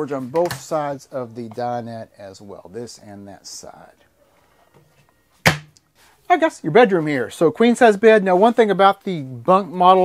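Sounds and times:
sharp knock: 5.4s - 5.8s.

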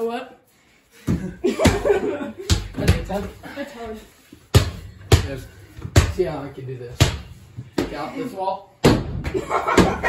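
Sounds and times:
basketball bouncing on hard surface: 1.1s - 3.3s, 4.5s - 6.3s.

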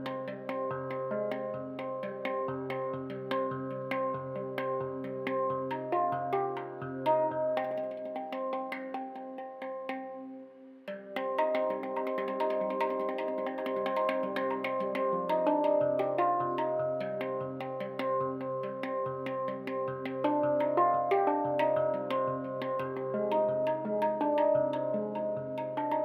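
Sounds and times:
handpan notes ringing: 0.0s - 10.3s, 10.9s - 26.0s.

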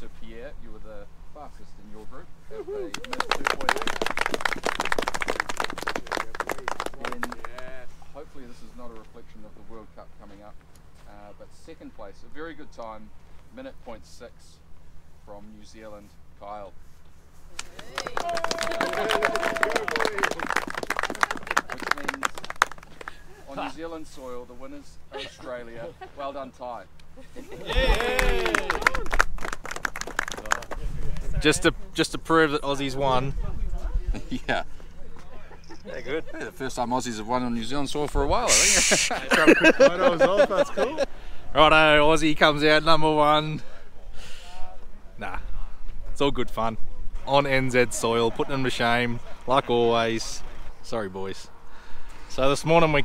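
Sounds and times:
group clapping: 2.9s - 7.8s, 17.5s - 23.3s, 27.6s - 31.3s
voices cheering: 17.6s - 22.7s, 27.5s - 30.6s.

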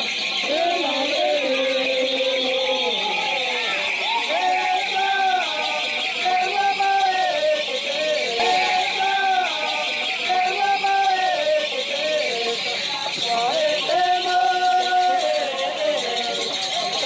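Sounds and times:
person singing gliding notes: 0.3s - 17.0s.

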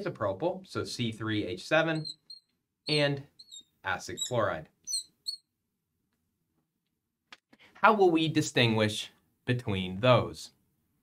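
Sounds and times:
marker squeaking on glass: 1.8s - 5.5s.

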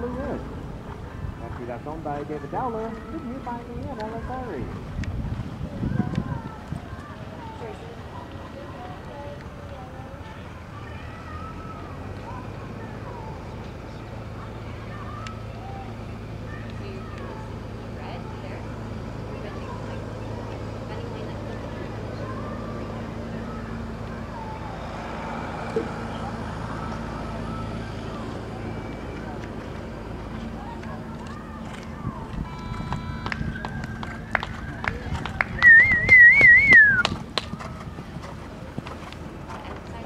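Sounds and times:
faint distant voices: 0.0s - 40.0s
steady low hum: 12.2s - 40.0s
faint steady whistle: 32.4s - 34.0s, 35.6s - 37.1s
loud warbling whistle: 35.6s - 37.1s.

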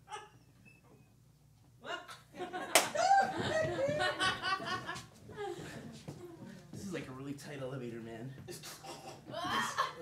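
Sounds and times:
laughter: 2.4s - 5.1s, 9.4s - 10.0s.

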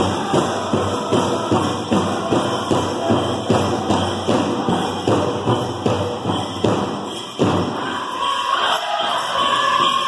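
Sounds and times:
drum beating steadily: 0.0s - 8.2s.

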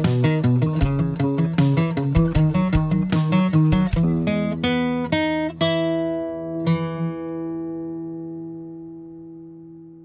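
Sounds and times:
plucked guitar music: 0.0s - 10.0s.

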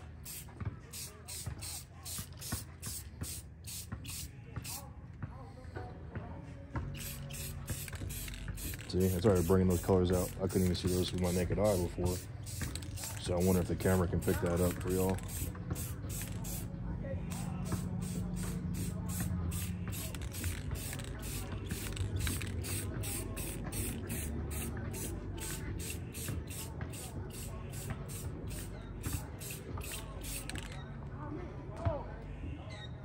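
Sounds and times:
aerosol can spraying hiss: 0.2s - 4.8s, 7.0s - 16.7s, 17.3s - 30.7s.

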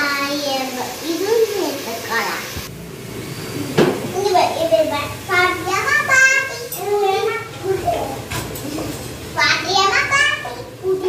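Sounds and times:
toddlers babbling and calling: 4.1s - 11.0s.

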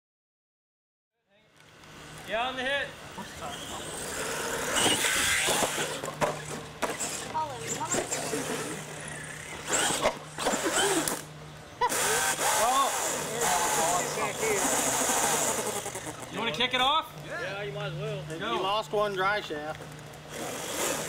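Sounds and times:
toy truck motor and tyres: 3.4s - 16.4s, 20.0s - 21.0s.

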